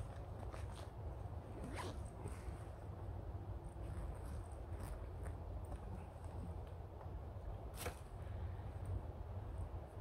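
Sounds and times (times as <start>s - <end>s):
zip being pulled: 1.5s - 2.6s.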